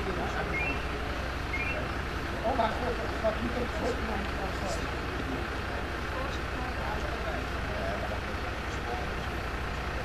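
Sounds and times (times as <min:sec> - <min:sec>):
fire engine idling: 0:00.0 - 0:10.0.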